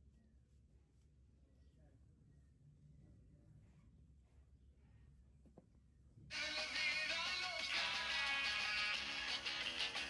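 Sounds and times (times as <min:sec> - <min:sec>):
faint low hum: 0:00.0 - 0:06.8.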